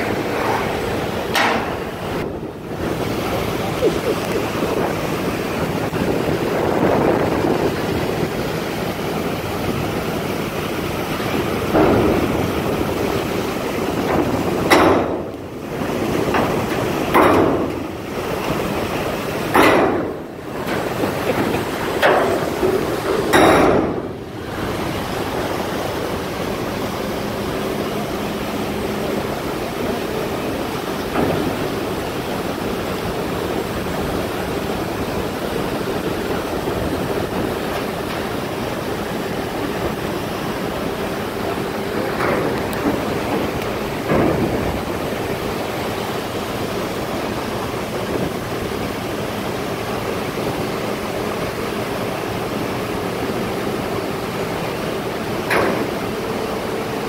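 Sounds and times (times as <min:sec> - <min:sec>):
wind buffeting microphone: 0:00.0 - 0:49.1
water rushing through dam gate: 0:00.0 - 0:57.0.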